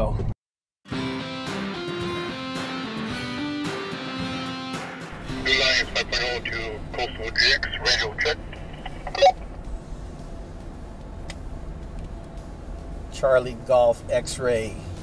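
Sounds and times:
short sharp radio tone: 0:05.4 - 0:09.6
two-way radio voice chatter: 0:05.4 - 0:09.6
car cabin driving hum: 0:05.5 - 0:15.0.

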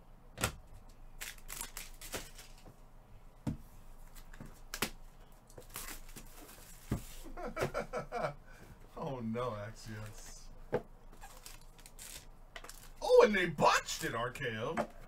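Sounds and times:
cardboard and wrap tearing: 0:01.2 - 0:02.5, 0:05.6 - 0:06.8, 0:11.2 - 0:13.0.

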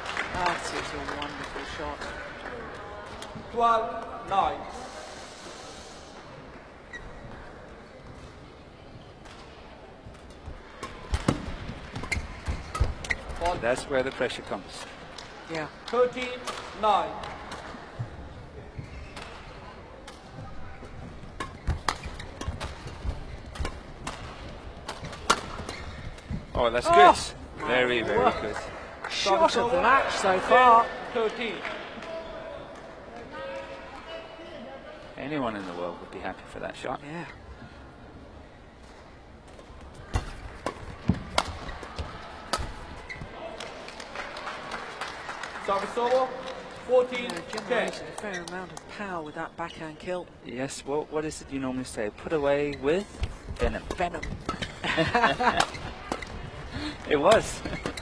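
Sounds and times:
rackets striking shuttlecock: 0:21.4 - 0:26.4.

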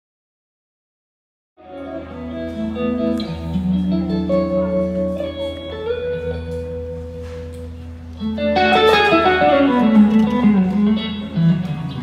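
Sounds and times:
electric guitar: 0:01.6 - 0:12.0.

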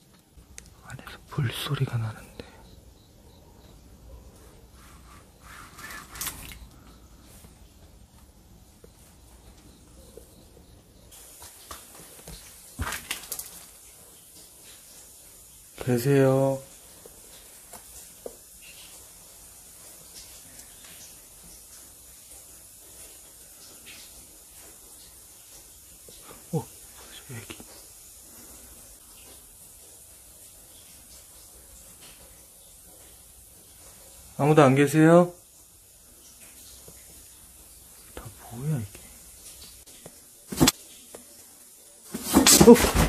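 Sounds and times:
faint steady hiss: 0:00.0 - 0:43.0
footsteps on gritty floor: 0:42.1 - 0:43.0.

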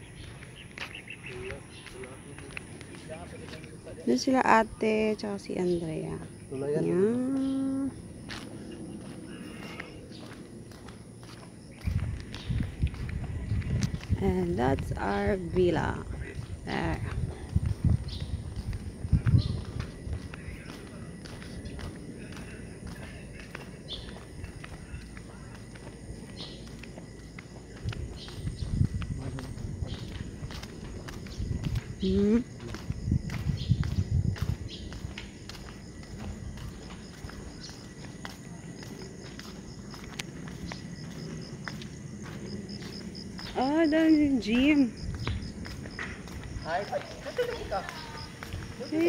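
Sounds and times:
footsteps on paved path: 0:00.0 - 0:49.0.

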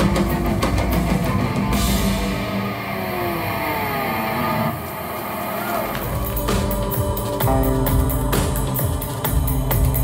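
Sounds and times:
industrial rock band playing: 0:00.0 - 0:10.0
electric tones sliding downward: 0:02.2 - 0:06.9.

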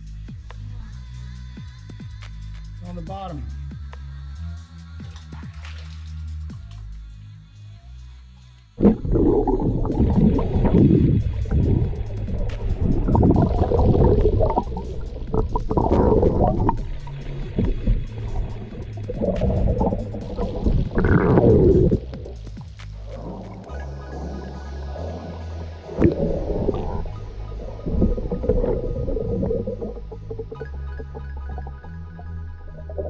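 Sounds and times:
electronic music with bass line: 0:00.0 - 0:33.0
muffled underwater rushing gurgling: 0:08.8 - 0:33.0.

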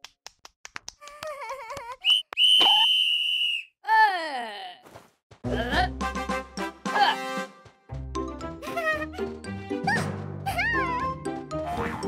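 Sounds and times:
long high whistle: 0:02.0 - 0:03.7.

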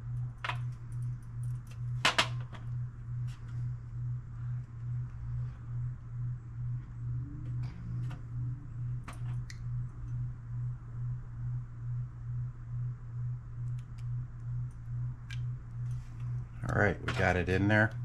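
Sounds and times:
pulsing low hum: 0:00.0 - 0:18.0.

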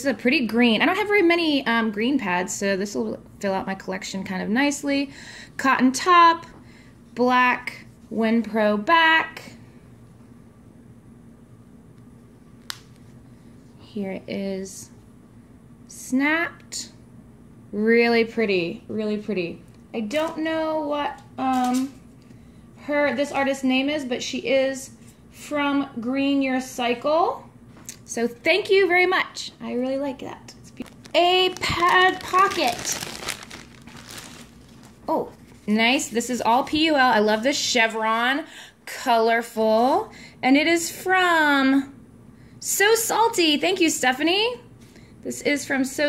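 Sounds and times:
plastic bag crinkling: 0:30.8 - 0:36.2.

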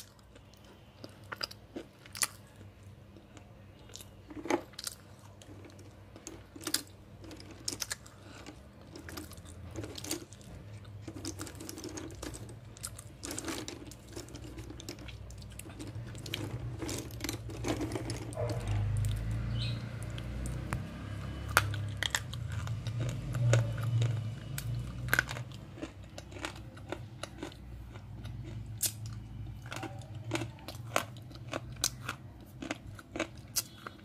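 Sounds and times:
pencils clattering in a box: 0:11.0 - 0:18.6
handling noise: 0:15.6 - 0:19.4.

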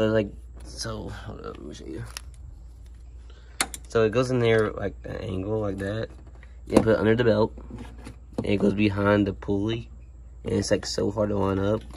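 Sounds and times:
low steady hum: 0:00.0 - 0:11.9.

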